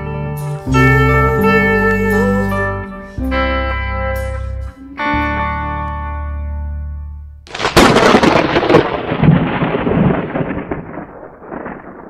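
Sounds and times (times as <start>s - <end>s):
thunder crack and rumble: 7.5s - 12.0s.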